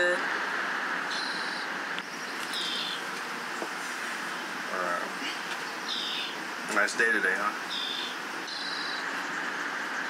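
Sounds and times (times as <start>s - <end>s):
steady outdoor hiss: 0.0s - 10.0s
high-pitched chirp: 1.1s - 1.7s, 7.7s - 9.1s.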